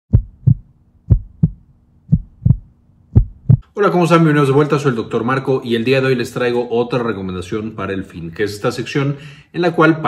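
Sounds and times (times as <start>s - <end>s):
heartbeat thumps: 0.1s - 3.7s
faint steady hum: 0.1s - 10.0s.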